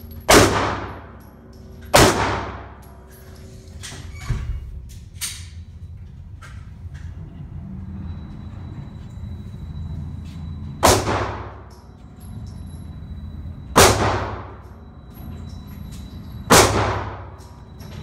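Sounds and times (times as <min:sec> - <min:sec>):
steady low hum: 0:00.0 - 0:18.0
gunshots echoing: 0:00.3 - 0:01.1, 0:02.0 - 0:02.8, 0:10.8 - 0:11.6, 0:13.8 - 0:14.6, 0:16.5 - 0:17.3.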